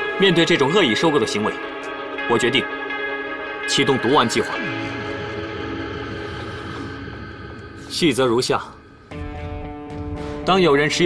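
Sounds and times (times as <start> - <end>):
sustained music chord: 0.0 - 11.0.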